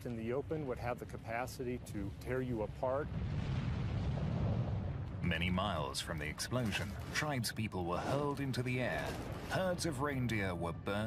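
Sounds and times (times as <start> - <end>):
explosion rumble with hiss: 1.5 - 7.3.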